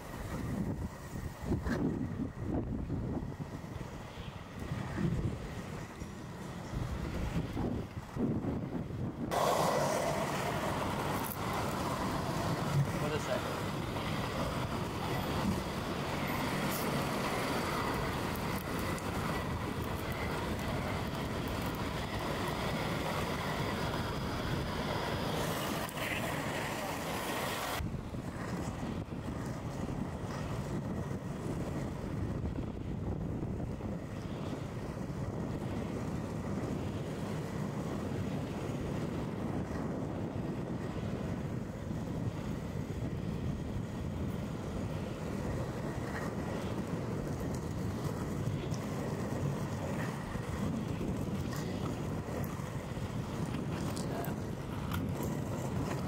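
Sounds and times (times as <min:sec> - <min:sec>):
skate wheels rolling on asphalt: 0:00.0 - 0:56.0
street noise: 0:00.0 - 0:56.0.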